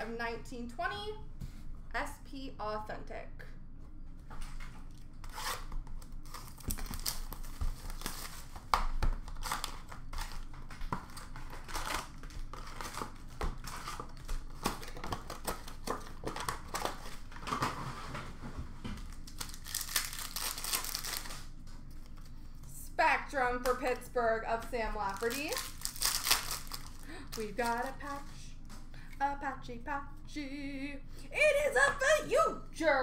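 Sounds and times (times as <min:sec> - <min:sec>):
wrappers tearing and crinkling: 0:05.2 - 0:17.8, 0:19.0 - 0:22.3, 0:24.9 - 0:28.4.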